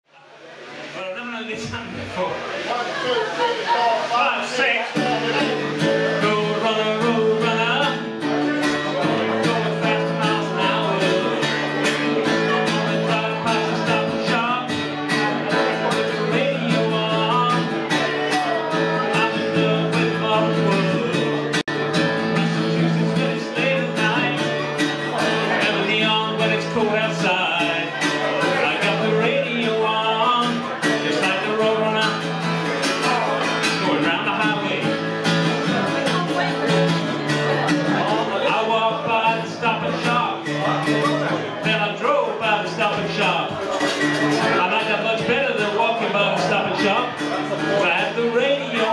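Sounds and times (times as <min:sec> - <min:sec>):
acoustic guitar strumming: 0:00.6 - 0:48.9.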